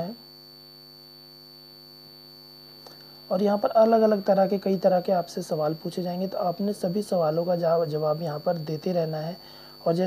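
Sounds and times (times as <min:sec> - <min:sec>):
electrical hum: 0:00.0 - 0:10.0
thin high whine: 0:00.0 - 0:10.0.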